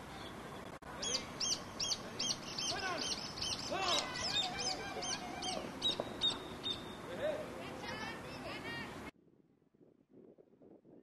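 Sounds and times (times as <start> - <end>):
bird calling high notes: 1.0 - 7.1
lower harsher bird calls: 1.0 - 7.1.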